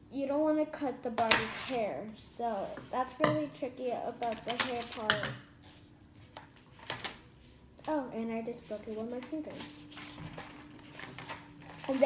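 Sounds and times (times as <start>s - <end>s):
plastic packaging clicking: 4.2s - 5.2s.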